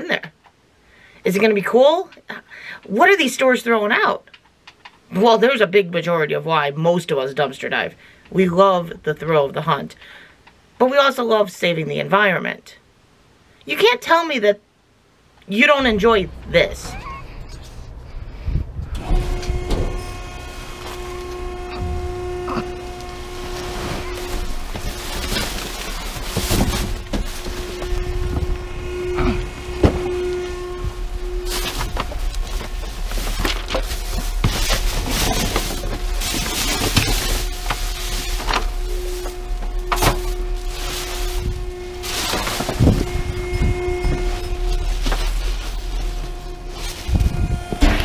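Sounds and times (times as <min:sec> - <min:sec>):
machine hum: 0:15.5 - 0:48.0
plastic and cardboard rustling: 0:19.0 - 0:48.0.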